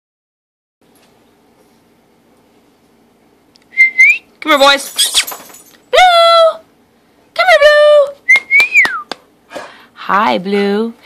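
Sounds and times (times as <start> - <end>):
person whistling: 3.7 - 4.3, 8.3 - 9.1.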